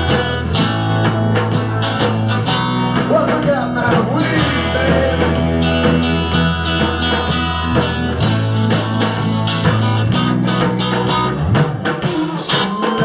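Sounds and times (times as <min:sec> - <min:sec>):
bass guitar: 0:00.0 - 0:13.0
drum kit steady beat: 0:00.0 - 0:13.0
electric guitars: 0:00.0 - 0:13.0.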